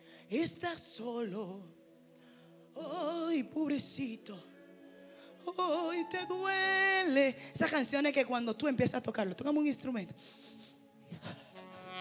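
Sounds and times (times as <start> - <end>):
faint vocal sound: 0.0 - 8.3.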